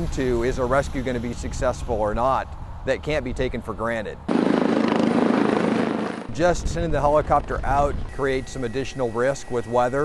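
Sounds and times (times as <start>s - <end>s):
helicopter rotor and engine: 4.3s - 6.3s.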